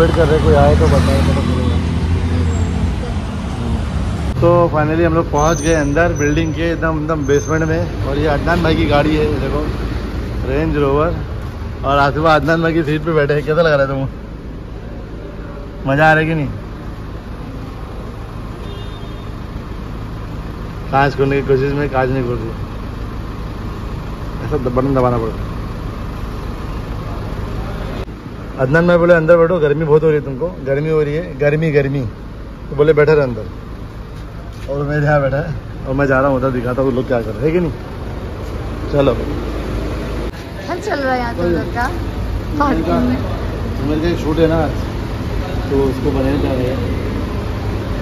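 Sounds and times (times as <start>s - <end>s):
car engine idling: 0.0s - 48.0s
road traffic rumble: 0.0s - 48.0s.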